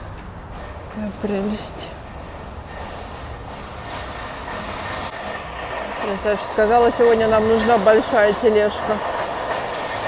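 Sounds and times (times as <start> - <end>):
shopping cart rattling on concrete: 4.0 - 10.0.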